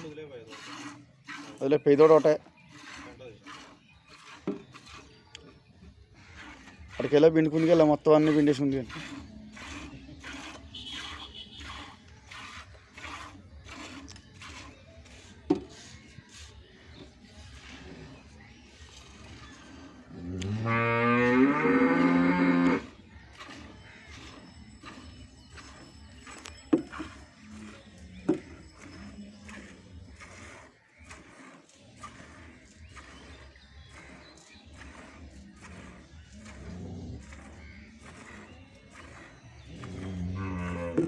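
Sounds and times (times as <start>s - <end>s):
water buffalo mooing: 20.1s - 24.9s.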